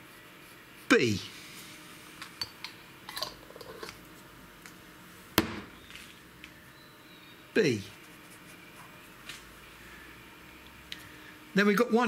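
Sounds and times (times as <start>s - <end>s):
sharp knock: 5.4s - 5.8s.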